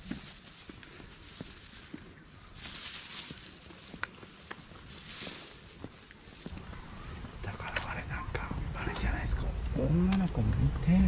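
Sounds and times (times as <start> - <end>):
people talking in hushed voices: 6.5 - 11.0.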